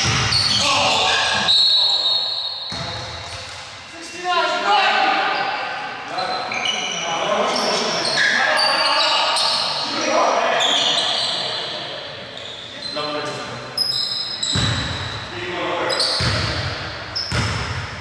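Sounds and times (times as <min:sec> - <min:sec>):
basketball bouncing: 0:00.0 - 0:00.6, 0:02.7 - 0:03.6, 0:14.5 - 0:15.0, 0:16.2 - 0:18.0
sneakers squeaking on court: 0:00.0 - 0:03.6, 0:06.1 - 0:09.8, 0:12.3 - 0:18.0
players' voices: 0:00.5 - 0:02.2, 0:03.8 - 0:17.0.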